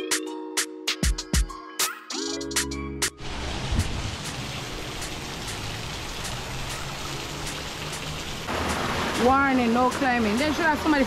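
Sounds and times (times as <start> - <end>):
waterfall splashing on rocks: 3.2 - 11.0.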